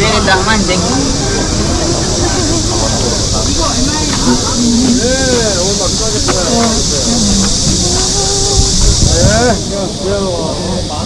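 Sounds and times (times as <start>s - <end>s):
overlapping voices of crowd: 0.0s - 11.0s
steady high hiss: 0.0s - 11.0s.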